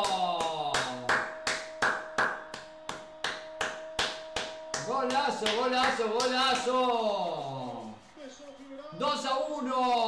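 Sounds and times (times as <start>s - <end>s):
man clapping hands: 0.0s - 7.0s.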